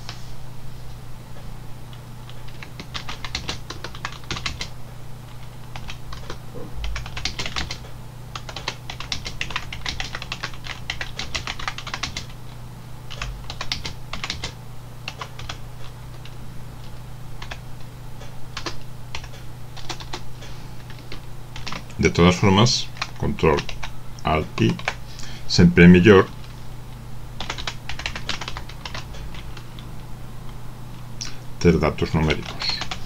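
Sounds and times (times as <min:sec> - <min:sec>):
steady low hum: 0:00.0 - 0:33.0
typing on keyboard: 0:02.3 - 0:04.7, 0:05.7 - 0:07.8, 0:08.4 - 0:12.4, 0:13.1 - 0:15.6, 0:17.4 - 0:17.6, 0:18.6 - 0:20.2, 0:20.9 - 0:21.9, 0:22.9 - 0:23.9, 0:24.6 - 0:25.0, 0:27.4 - 0:29.4, 0:32.3 - 0:33.0.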